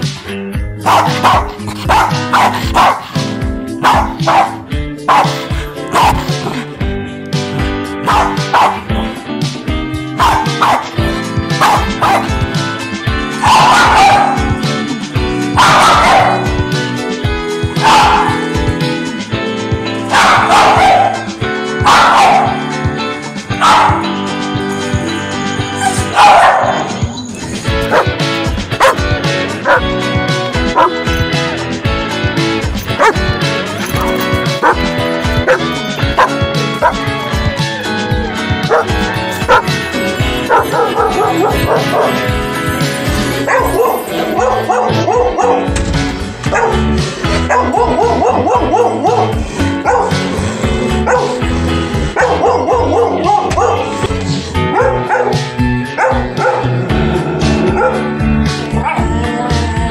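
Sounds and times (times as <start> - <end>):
pop song backing track: 0.0 - 59.9
dog barking and yipping: 0.8 - 6.7, 8.0 - 9.0, 10.2 - 12.5, 13.3 - 14.7, 15.5 - 16.6, 17.7 - 18.6, 19.9 - 22.8, 23.5 - 24.3, 25.1 - 31.6, 32.6 - 37.6, 38.6 - 45.8, 46.4 - 50.2, 51.1 - 51.4, 52.1 - 56.8, 57.7 - 58.1, 58.7 - 59.0.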